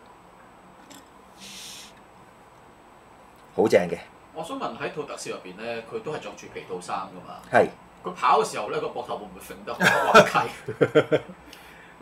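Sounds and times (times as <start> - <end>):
person exhaling: 1.4 - 2.0.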